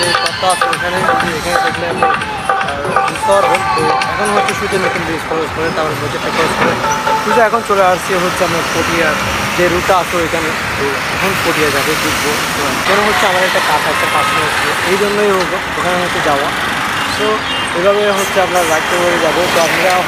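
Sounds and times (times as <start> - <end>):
man talking: 0.0 - 20.0
road traffic noise: 0.0 - 20.0.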